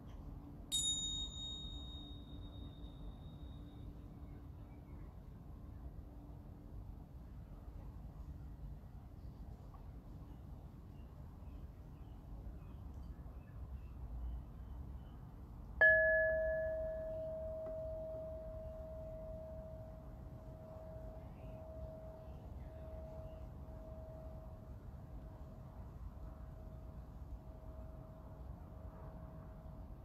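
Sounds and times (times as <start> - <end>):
singing bowl ringing: 0.7 - 3.8, 15.8 - 25.2
high overtone ringing: 15.8 - 24.4.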